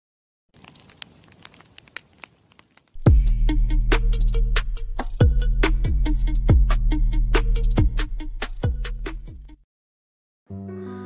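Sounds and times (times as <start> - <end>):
paper burning crackles: 0.5 - 3.1.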